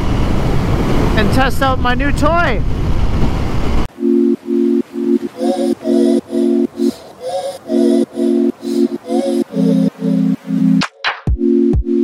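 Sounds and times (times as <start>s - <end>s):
wind and road rush: 0.0s - 4.0s
music with repeating held chords: 3.9s - 12.0s.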